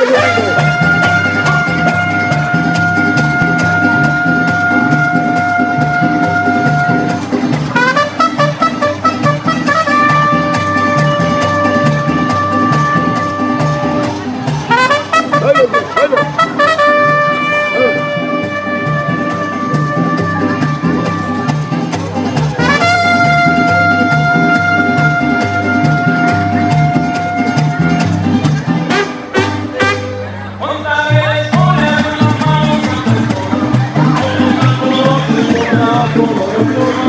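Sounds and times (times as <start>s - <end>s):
trumpet notes: 0.0s - 21.8s, 22.5s - 30.4s
bass rhythm: 0.0s - 30.2s, 31.1s - 37.0s
strummed guitars: 0.0s - 37.0s.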